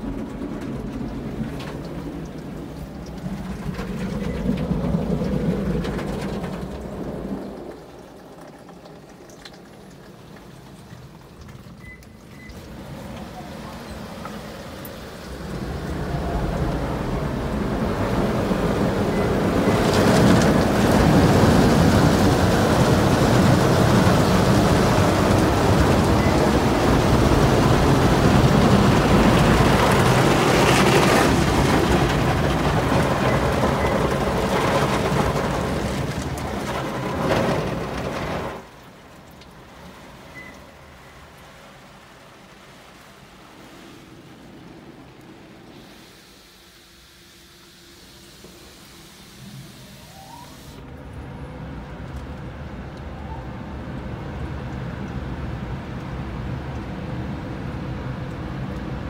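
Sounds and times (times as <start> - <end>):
water spraying on car: 0.0 - 52.9.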